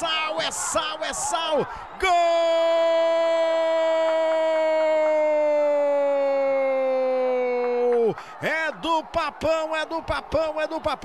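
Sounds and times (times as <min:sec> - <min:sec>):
commentator's long goal shout: 0:00.0 - 0:11.0
rapid excited speech: 0:00.0 - 0:11.0.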